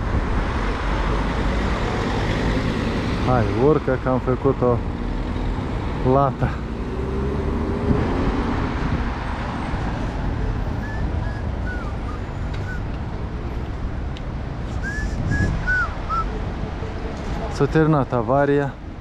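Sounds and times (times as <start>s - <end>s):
passing cars rumbling: 0.0s - 19.0s.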